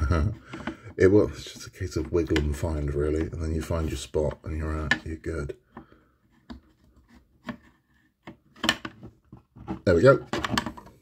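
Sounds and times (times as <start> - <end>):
plastic parts clicking: 8.2 - 11.0.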